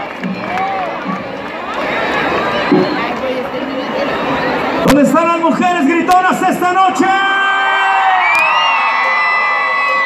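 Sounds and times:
crowd cheering and whooping: 0.0s - 1.0s, 7.3s - 10.0s.

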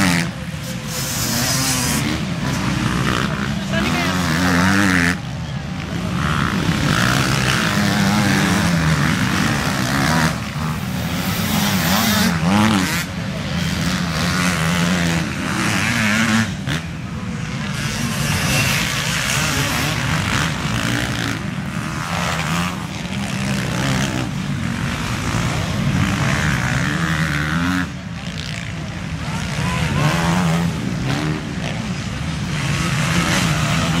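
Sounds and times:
motocross bikes revving past: 0.0s - 34.0s.

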